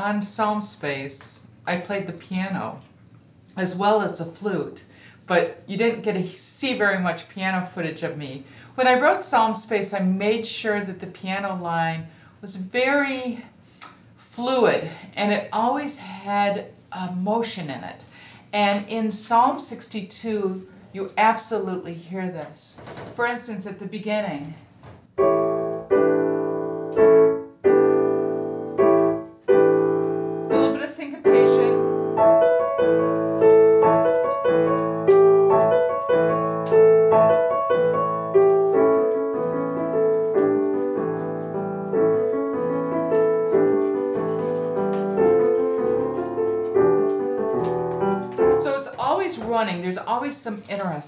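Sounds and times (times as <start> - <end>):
grand piano playing: 25.2 - 49.5.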